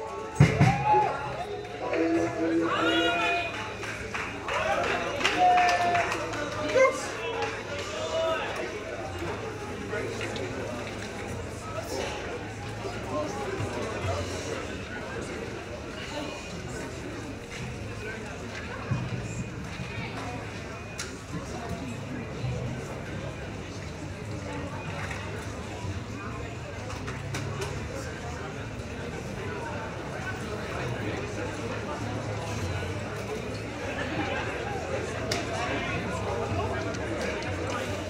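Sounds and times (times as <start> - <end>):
indistinct voices talking: 0.0 - 16.3
indistinct talking: 0.0 - 38.0.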